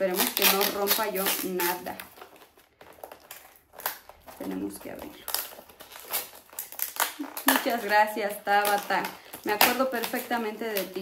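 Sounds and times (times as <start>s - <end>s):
wrapping paper rustling: 0.0s - 11.0s.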